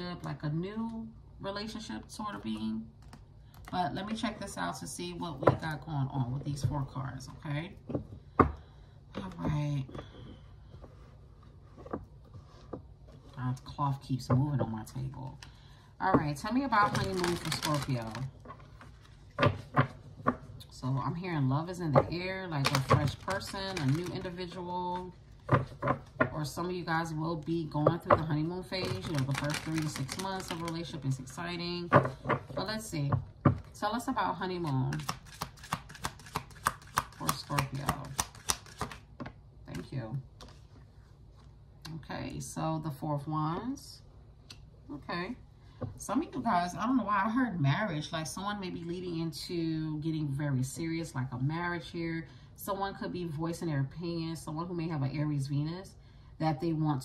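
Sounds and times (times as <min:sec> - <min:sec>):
low steady hum: 0:00.0 - 0:57.0
cards being shuffled: 0:22.6 - 0:24.4, 0:28.8 - 0:30.9, 0:34.8 - 0:39.1.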